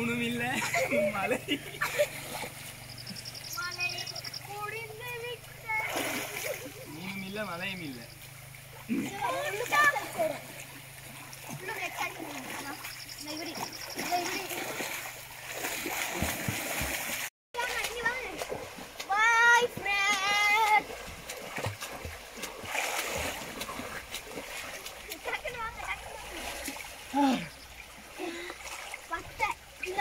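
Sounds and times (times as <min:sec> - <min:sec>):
water splashing: 0:00.0 - 0:30.0
drawn-out wavering calls: 0:02.1 - 0:05.8, 0:06.6 - 0:11.4, 0:12.6 - 0:14.7.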